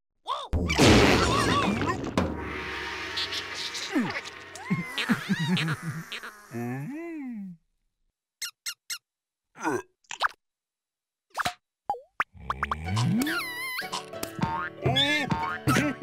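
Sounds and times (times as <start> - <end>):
squeaky cartoon voices: 3.2 - 6.9, 8.4 - 9.1, 13.0 - 14.0
children's cartoon music: 12.8 - 16.0.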